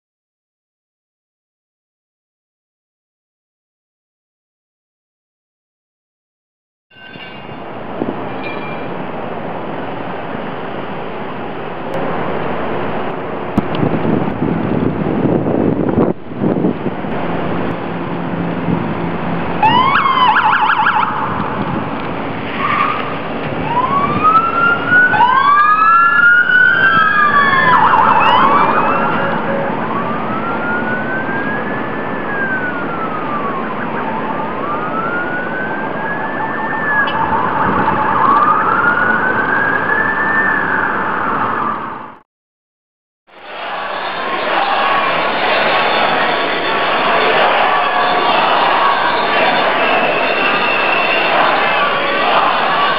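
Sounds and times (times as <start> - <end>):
street noise: 6.9 - 42.2, 43.3 - 52.9
police sirens wailing: 7.6 - 42.2, 43.3 - 52.9
siren yelping: 19.5 - 22.0, 22.6 - 42.2.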